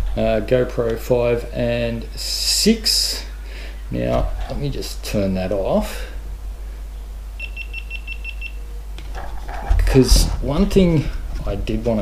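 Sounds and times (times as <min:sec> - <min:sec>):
short high camera beeps: 0:07.4 - 0:08.6.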